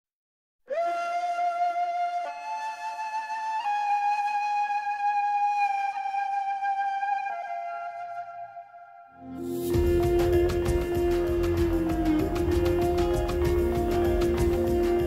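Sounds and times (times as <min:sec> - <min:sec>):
solo woodwind melody: 0:00.7 - 0:15.0.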